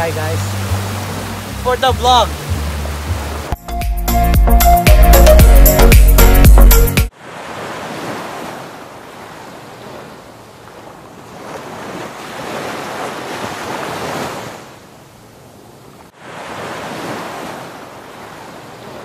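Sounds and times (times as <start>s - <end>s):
small waves washing onto shore: 0.0s - 3.6s, 7.1s - 19.0s.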